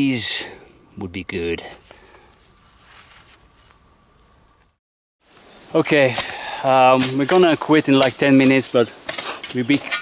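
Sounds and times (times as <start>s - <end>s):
faint rustling: 1.7s - 4.8s.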